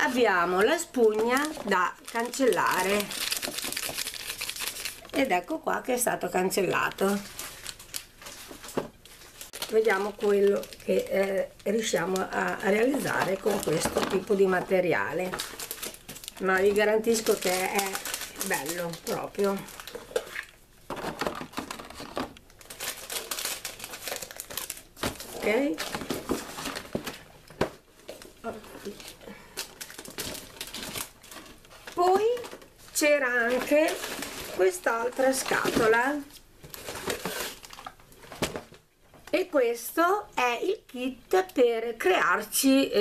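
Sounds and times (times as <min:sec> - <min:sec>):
plastic film packaging crinkling: 0:00.0 - 0:38.8.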